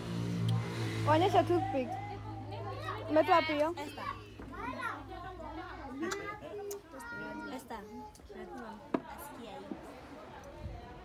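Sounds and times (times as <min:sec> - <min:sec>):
indistinct voices talking: 0:00.6 - 0:10.2
children's voices: 0:01.6 - 0:09.0.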